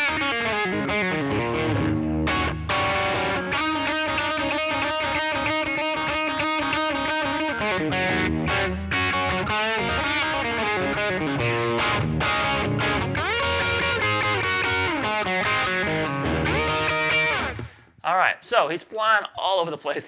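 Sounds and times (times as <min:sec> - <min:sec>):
overdriven electric guitar blues lead: 0:00.0 - 0:17.9.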